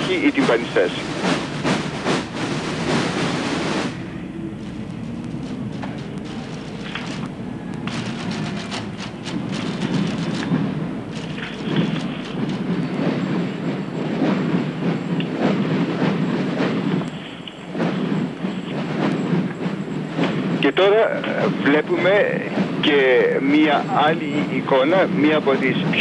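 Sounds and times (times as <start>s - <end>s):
massed drums beating: 0.0s - 26.0s.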